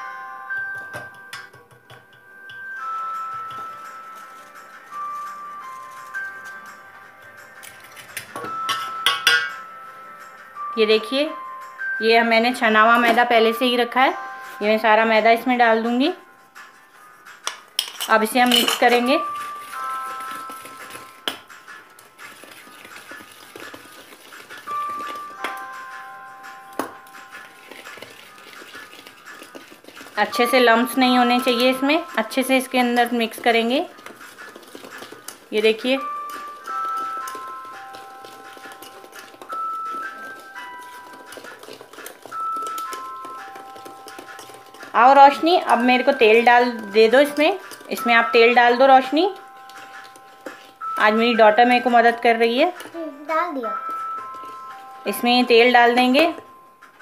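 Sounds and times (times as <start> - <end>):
background music of held notes: 0.0 - 57.0
cake batter being mixed: 2.8 - 9.4, 17.8 - 57.0
spoon scraping metal sieve: 17.8 - 21.2, 26.9 - 52.9.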